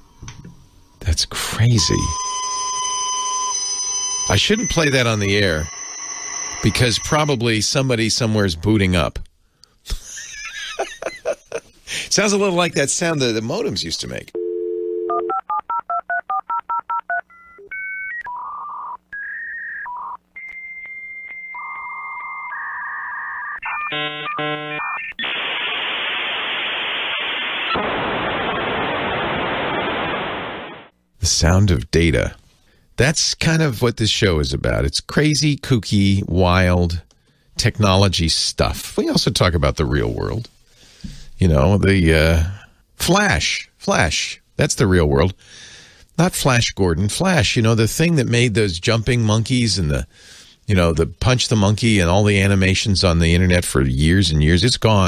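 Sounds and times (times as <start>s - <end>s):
steady electronic data tones: 1.5s - 8.0s, 21.0s - 30.9s
touch-tone dialing: 1.8s - 7.4s.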